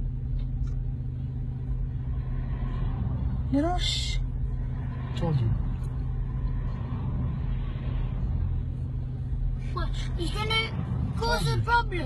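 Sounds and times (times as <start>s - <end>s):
traffic engines rumbling: 0.0s - 12.0s.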